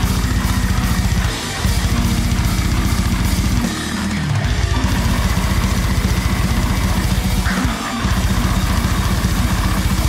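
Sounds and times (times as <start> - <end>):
heavy metal band music: 0.0 - 10.0.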